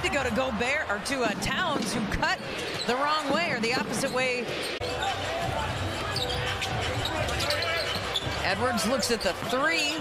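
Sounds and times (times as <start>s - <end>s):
murmur of indoor crowd: 0.0s - 10.0s.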